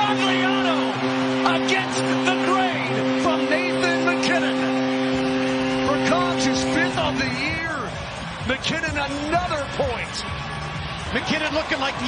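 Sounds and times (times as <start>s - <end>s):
goal horn: 0.0s - 8.8s
crowd cheering and shouting: 0.0s - 12.0s.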